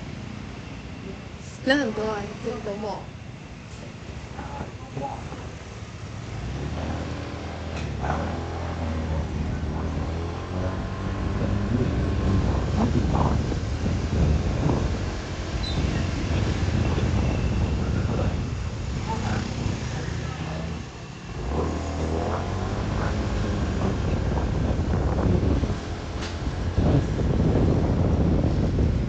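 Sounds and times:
wind and road noise: 0.0 - 29.0.

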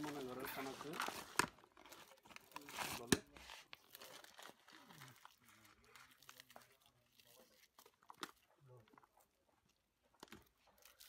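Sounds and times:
puffed rice crunching and rustling: 0.0 - 11.0.

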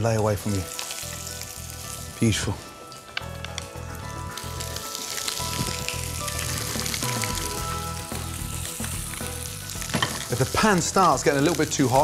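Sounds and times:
background music: 0.0 - 12.0
fish sizzling in oil: 0.0 - 12.0.

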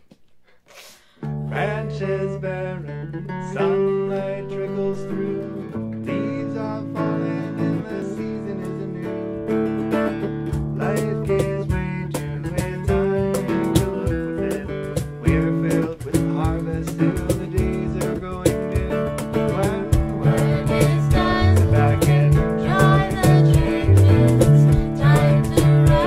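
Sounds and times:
electric guitars strumming: 1.2 - 26.0
woman singing: 20.2 - 26.0.

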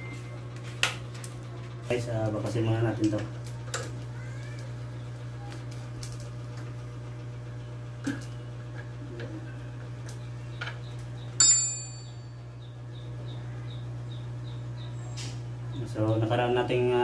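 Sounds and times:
steady low hum: 0.0 - 17.0
ringing metal clink: 11.4 - 12.4.

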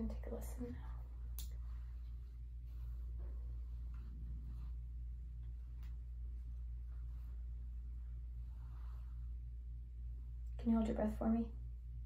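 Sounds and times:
faint soft rustle: 0.0 - 10.4
low hum: 0.0 - 12.0.

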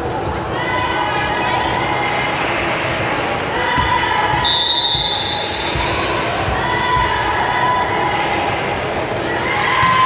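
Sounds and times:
crowd voices: 0.0 - 10.0
short high whistle: 4.4 - 5.6.

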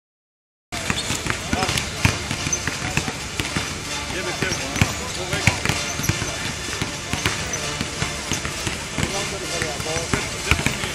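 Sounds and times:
basketballs bouncing on hardwood: 0.8 - 10.9
voices talking: 0.8 - 10.9.

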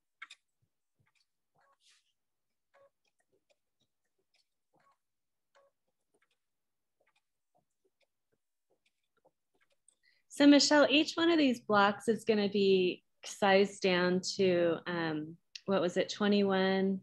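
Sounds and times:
sewing machine ticking: 0.0 - 10.4.

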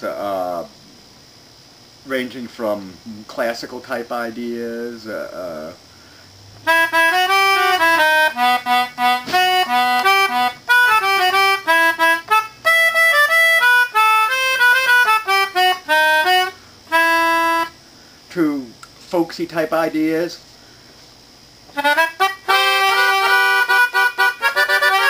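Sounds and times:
free-reed keyboard wind instrument: 6.6 - 17.8, 21.7 - 25.0.

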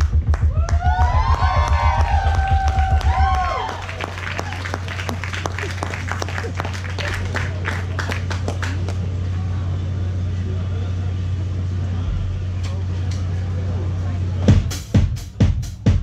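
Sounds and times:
audience clapping: 0.0 - 9.1
low electrical hum: 0.0 - 15.0.

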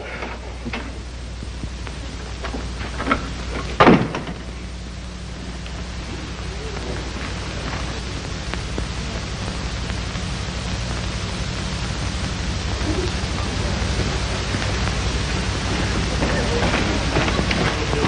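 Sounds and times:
faint clicks: 0.0 - 18.0
low hum: 0.0 - 18.0
steady hiss: 0.0 - 18.0.

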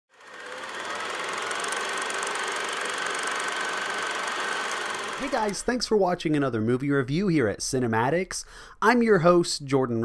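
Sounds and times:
film projector whirring: 0.1 - 6.0.

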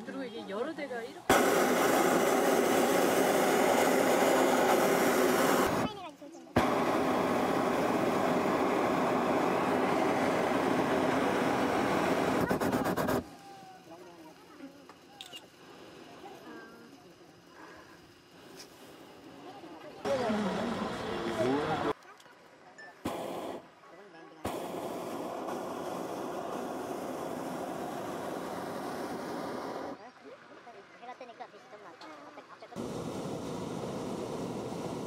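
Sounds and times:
propane burner blasting: 0.0 - 22.0, 23.0 - 23.7, 24.4 - 30.0, 32.8 - 35.0
voices: 19.2 - 23.0.

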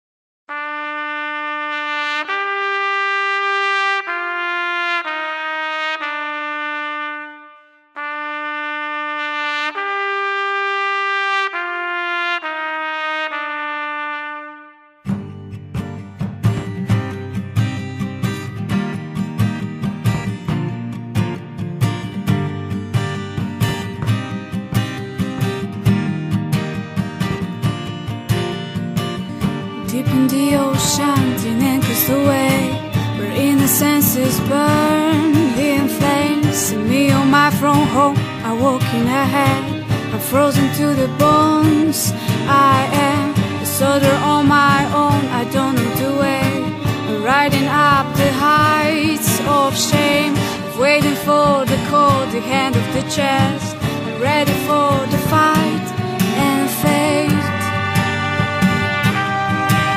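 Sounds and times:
solo trumpet: 0.5 - 15.5, 29.1 - 59.9.

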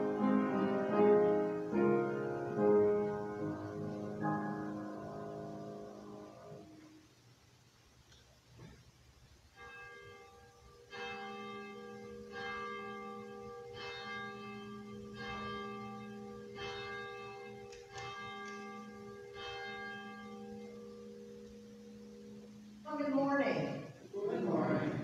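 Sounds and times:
church bell tolling: 9.6 - 24.0.

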